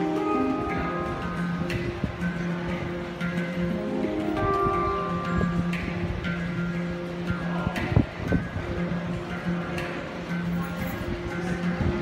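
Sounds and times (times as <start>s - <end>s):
handpan notes ringing: 0.0s - 12.0s.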